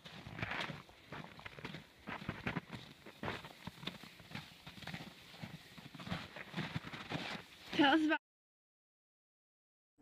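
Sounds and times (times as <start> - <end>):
footsteps in snow: 0.0 - 8.2
tree dragged over snow: 0.0 - 8.2.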